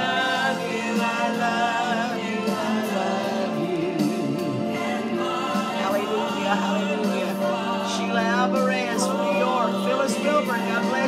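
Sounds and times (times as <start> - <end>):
choir singing gospel song: 0.0 - 11.0.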